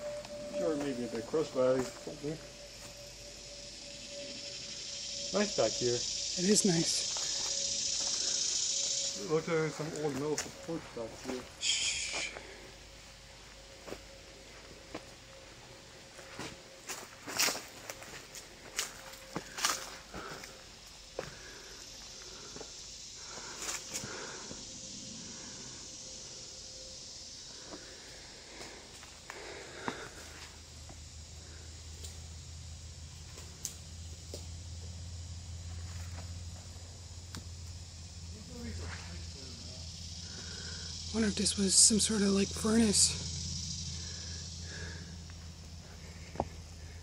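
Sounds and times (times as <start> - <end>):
steady tone: 0.0 - 18.9
high-pitched insect drone: 0.0 - 47.0
footsteps on forest floor: 0.1 - 3.1, 6.8 - 12.7, 13.3 - 24.3, 27.6 - 31.1, 44.7 - 47.0.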